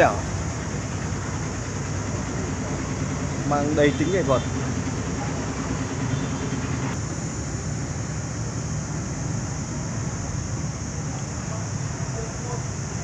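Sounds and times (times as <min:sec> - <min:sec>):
distant road traffic rumble: 0:00.0 - 0:13.0
steady high hiss: 0:00.0 - 0:13.0.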